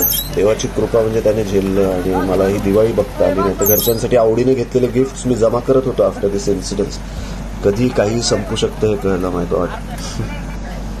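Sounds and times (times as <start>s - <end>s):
low rumble of road traffic: 0.0s - 11.0s
men talking: 0.3s - 10.3s.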